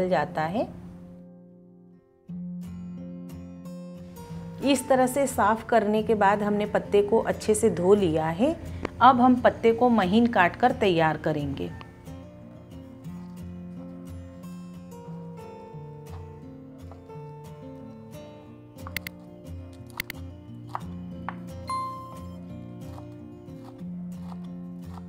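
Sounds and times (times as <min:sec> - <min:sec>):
instrumental background music: 0:00.0 - 0:25.0
knife chopping on cutting board: 0:20.6 - 0:21.5, 0:22.8 - 0:25.0.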